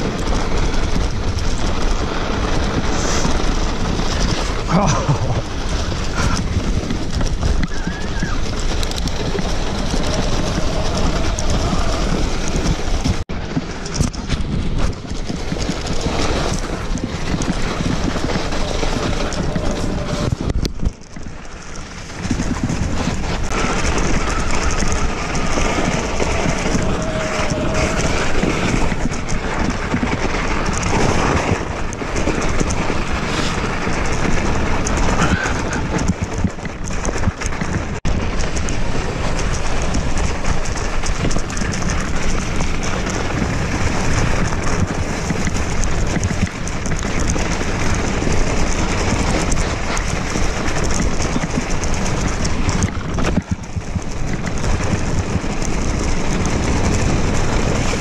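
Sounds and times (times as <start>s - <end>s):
bike running noise: 0.0s - 58.0s
tyres on wet snow: 0.0s - 58.0s
wind on camera: 0.0s - 58.0s.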